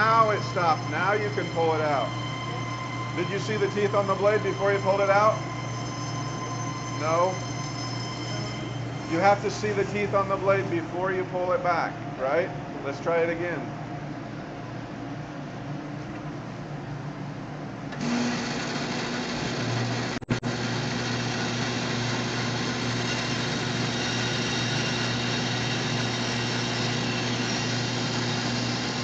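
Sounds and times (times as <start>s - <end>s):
bandsaw running with a hum: 0.0s - 11.6s, 17.9s - 29.0s
dust collector running: 0.0s - 14.4s, 17.9s - 29.0s.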